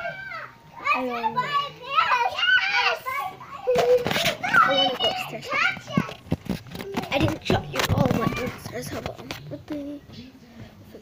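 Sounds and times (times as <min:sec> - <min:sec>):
child talking and exclaiming: 0:00.0 - 0:10.2.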